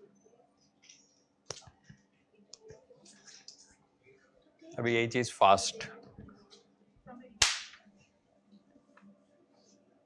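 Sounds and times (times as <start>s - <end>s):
sharp crack: 7.4s - 7.8s.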